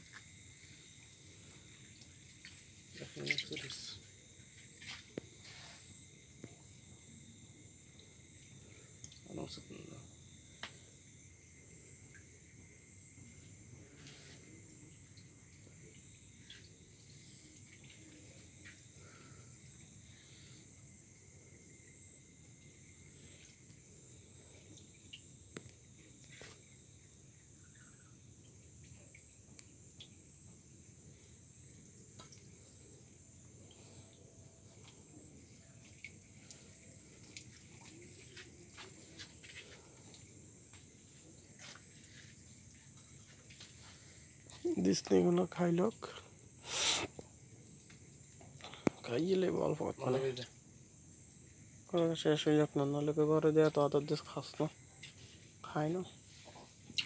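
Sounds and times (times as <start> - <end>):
water drips and splashes: 0.0 - 5.6, 8.0 - 9.7, 12.0 - 20.0, 22.5 - 34.0, 34.6 - 46.1
night insects chirring: 0.0 - 57.0.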